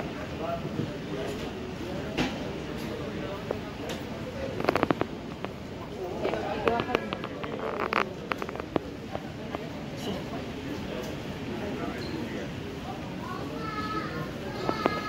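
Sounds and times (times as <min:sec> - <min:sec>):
indistinct voices of passers-by: 0:00.0 - 0:15.0.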